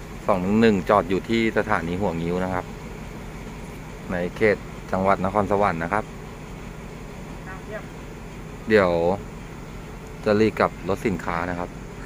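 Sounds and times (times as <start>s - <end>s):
diesel train engine idling: 0.0s - 12.0s.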